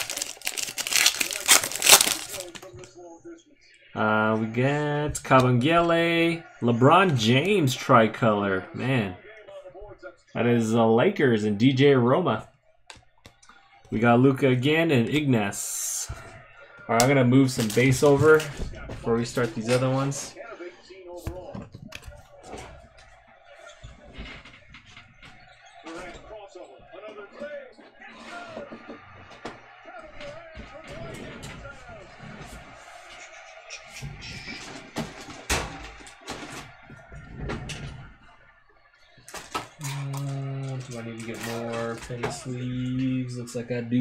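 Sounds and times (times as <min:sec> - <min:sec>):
trading cards clicking: 0:00.0 - 0:02.6.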